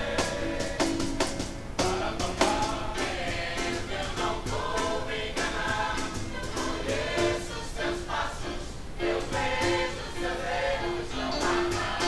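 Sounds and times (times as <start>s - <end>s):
youth choir singing short notes: 0.0s - 12.0s.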